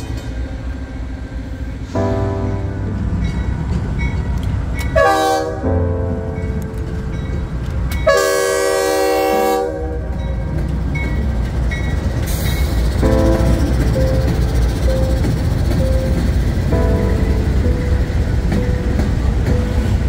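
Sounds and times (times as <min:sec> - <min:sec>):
freight locomotives rumbling past: 0:00.0 - 0:20.0
train air horn blast: 0:05.0 - 0:05.8, 0:08.1 - 0:10.1.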